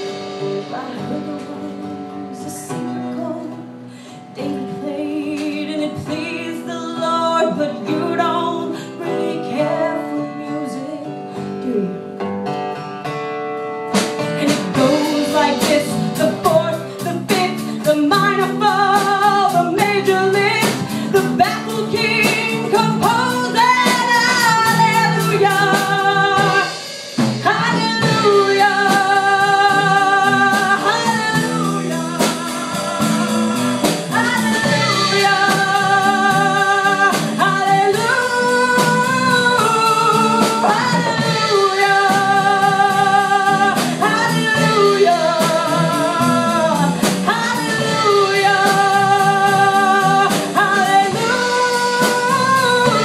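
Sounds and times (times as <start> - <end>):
woman singing: 0.0 - 12.3, 13.9 - 53.0
acoustic guitar: 0.0 - 53.0
drums: 0.0 - 53.0.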